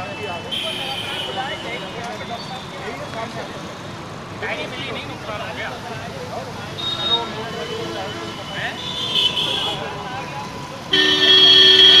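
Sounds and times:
street noise: 0.0 - 12.0
vehicle horn two-note blast: 11.0 - 12.0.

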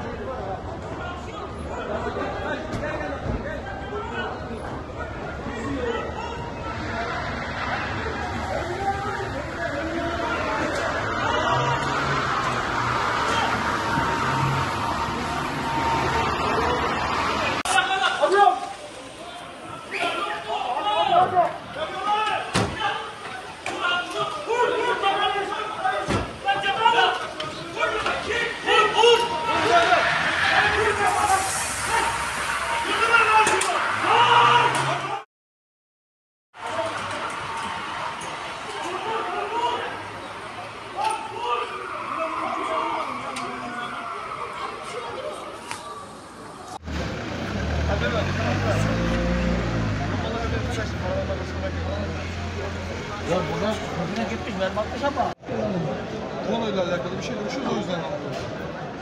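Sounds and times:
people talking: 0.0 - 35.2, 47.8 - 59.0
people's voices: 0.0 - 35.2, 36.6 - 59.0.

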